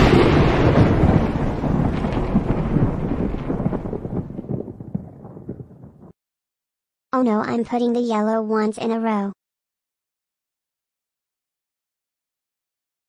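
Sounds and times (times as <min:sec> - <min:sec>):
cartoon crash with crackly rumble: 0:00.0 - 0:06.2.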